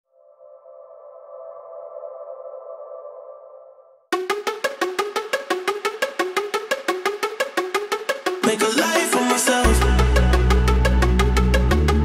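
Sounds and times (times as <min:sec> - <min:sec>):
sustained synthesized chord: 0:00.1 - 0:12.0.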